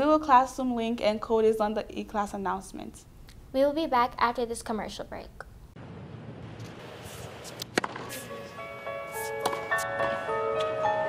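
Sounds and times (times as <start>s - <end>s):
racket striking ball: 6.5s - 10.8s.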